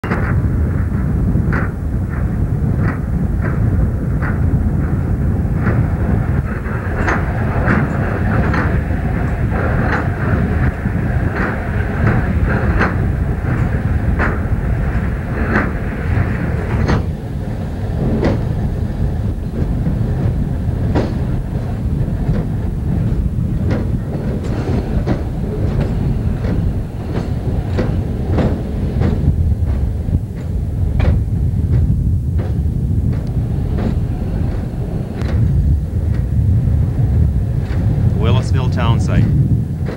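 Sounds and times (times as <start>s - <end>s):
rail wheels clicking over joints: 0.0s - 38.1s
truck rumbling on railway track: 0.0s - 39.9s.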